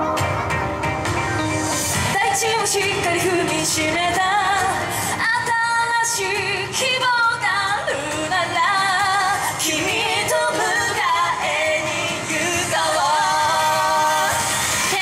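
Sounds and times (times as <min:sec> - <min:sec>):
loud pop music: 0:00.0 - 0:15.0
women singing into microphones: 0:02.0 - 0:15.0.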